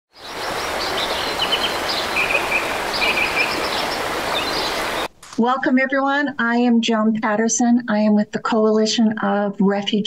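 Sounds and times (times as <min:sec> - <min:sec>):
small birds chirping: 0:00.1 - 0:05.1.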